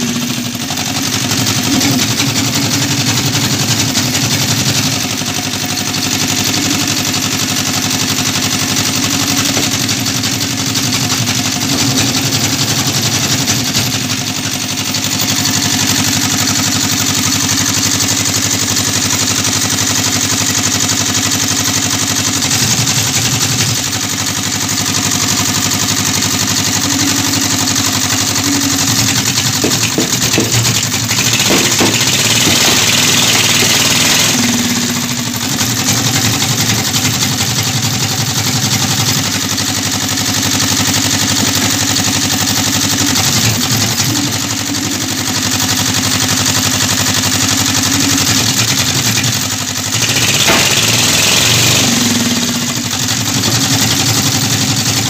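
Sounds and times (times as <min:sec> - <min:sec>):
log splitter engine running: 0:00.0 - 0:55.0.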